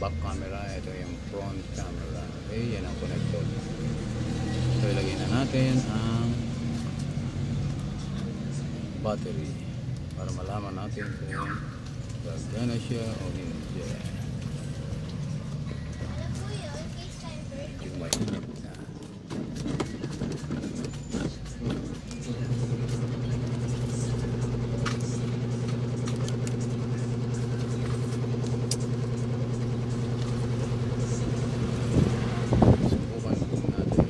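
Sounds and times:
low motor hum: 0.0 - 34.0.

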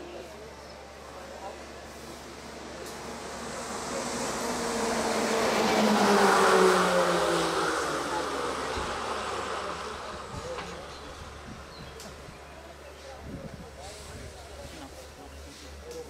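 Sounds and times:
vehicle driving past: 2.4 - 10.3.

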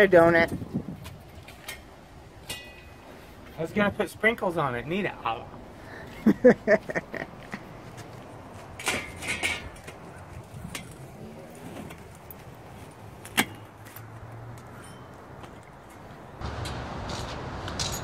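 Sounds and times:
man laughing: 5.9 - 7.7.

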